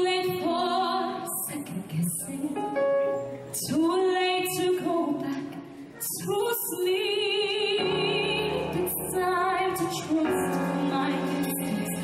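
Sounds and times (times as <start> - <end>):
woman singing a ballad: 0.0 - 2.9, 3.6 - 12.0.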